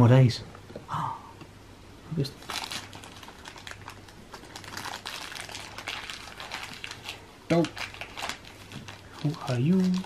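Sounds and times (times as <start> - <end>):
plastic packaging crinkling: 2.2 - 10.0.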